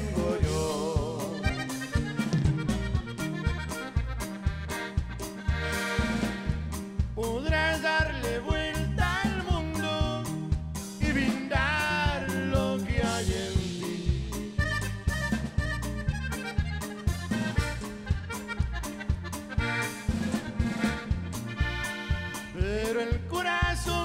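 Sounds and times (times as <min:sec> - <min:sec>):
button accordion melody: 0:00.0 - 0:24.0
drum kit beat: 0:00.0 - 0:24.0
electric bass: 0:00.0 - 0:24.0
guitar: 0:00.0 - 0:24.0.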